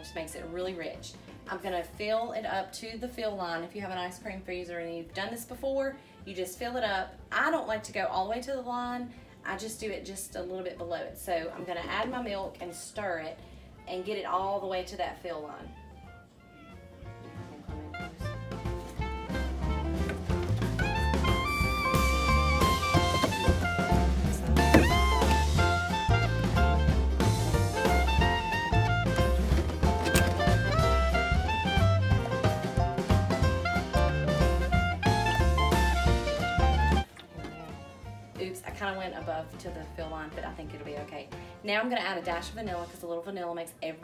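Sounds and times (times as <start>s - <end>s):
upbeat jazzy instrumental music: 0.0s - 43.2s.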